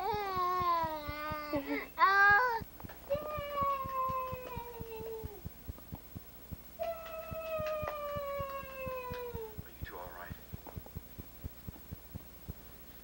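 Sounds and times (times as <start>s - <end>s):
fast ticking clicks: 0.0s - 12.7s.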